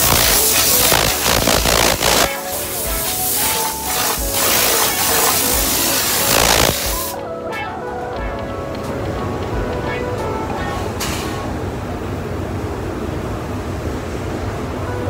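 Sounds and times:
spray gun hissing: 0:00.0 - 0:07.2
background music: 0:00.0 - 0:11.6.

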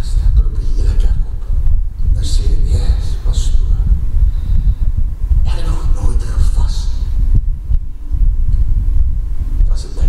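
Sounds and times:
low rumbling throb: 0:00.0 - 0:10.0.

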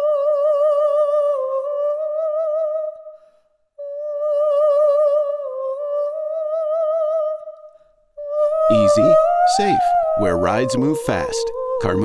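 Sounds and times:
person humming with vibrato: 0:08.2 - 0:12.0.

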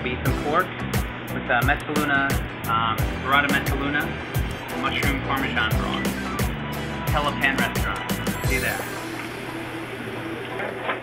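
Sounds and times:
kitchen ventilation hum: 0:00.0 - 0:05.7.

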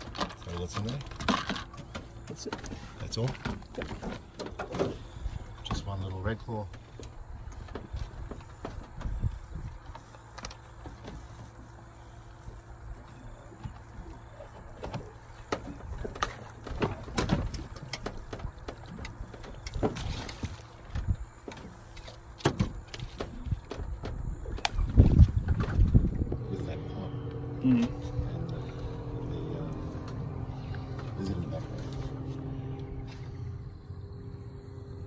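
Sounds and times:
electric motor hum: 0:25.9 - 0:35.0.

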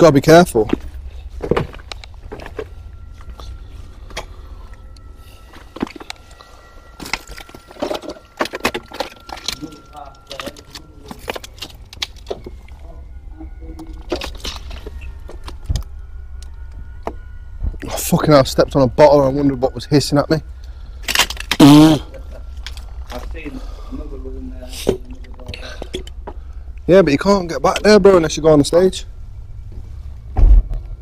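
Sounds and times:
footsteps on debris: 0:00.5 - 0:04.4, 0:05.4 - 0:12.8
faint high tone: 0:01.9 - 0:20.9.

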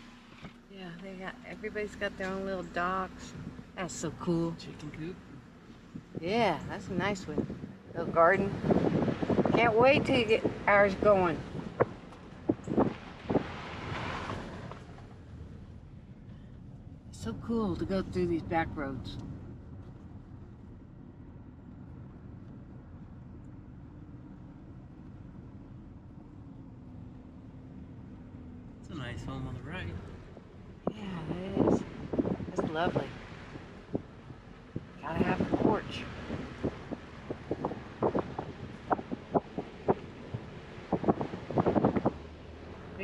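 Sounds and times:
car engine and tyre noise: 0:00.0 - 0:43.0
wind on microphone: 0:05.9 - 0:14.9, 0:30.8 - 0:43.0.

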